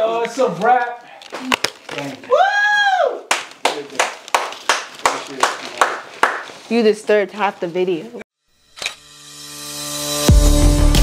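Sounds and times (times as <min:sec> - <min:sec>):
person clapping hands: 0:03.3 - 0:06.5.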